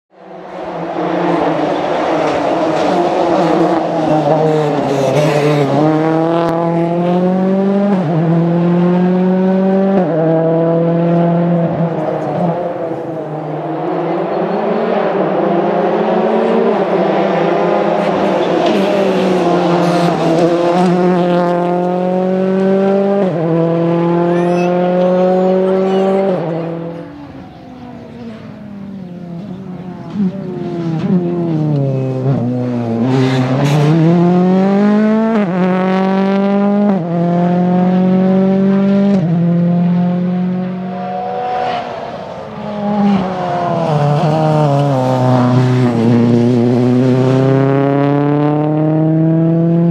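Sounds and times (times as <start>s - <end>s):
rally car engine accelerating: 0.3s - 49.9s.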